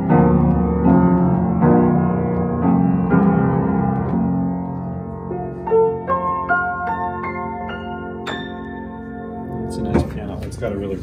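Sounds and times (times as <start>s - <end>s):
upright piano chords: 0.0s - 11.0s.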